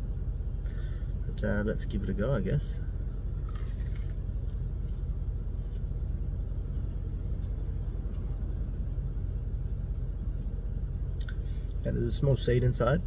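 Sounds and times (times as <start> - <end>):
car cabin rumble: 0.0 - 13.0
crunchy fruit chewing: 3.2 - 8.3.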